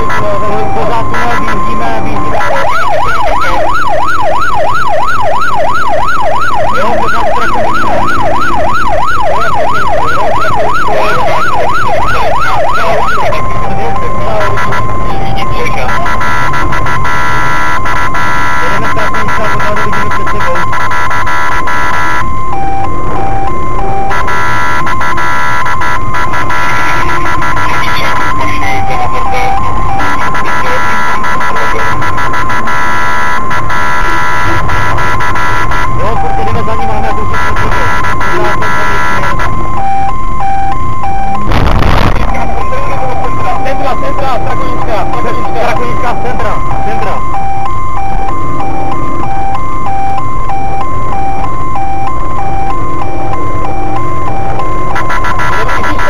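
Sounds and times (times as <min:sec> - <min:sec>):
car engine and road rumble: 0:00.0 - 0:56.0
police car siren: 0:00.0 - 0:56.0.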